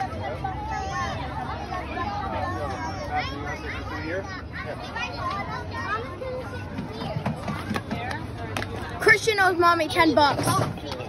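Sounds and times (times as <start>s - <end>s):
outdoor background murmur: 0.0s - 11.0s.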